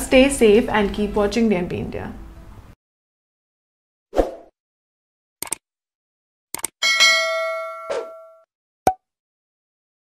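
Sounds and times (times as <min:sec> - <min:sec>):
bell-like chime: 0:06.8 - 0:08.5.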